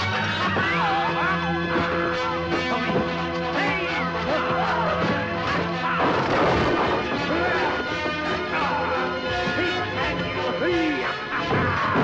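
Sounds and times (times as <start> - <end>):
music: 0.0 - 12.0
wooden stage collapsing crash: 5.9 - 7.8.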